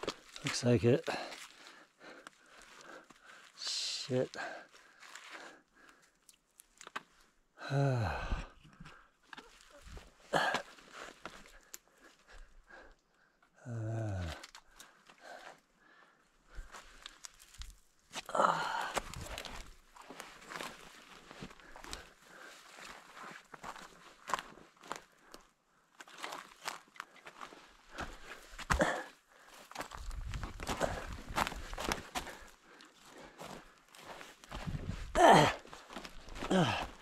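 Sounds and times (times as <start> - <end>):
twigs snapping and rustling: 5.9 - 7.2, 16.6 - 22.1
person's loud voiced sound: 7.6 - 8.4, 35.2 - 35.6, 36.5 - 36.9.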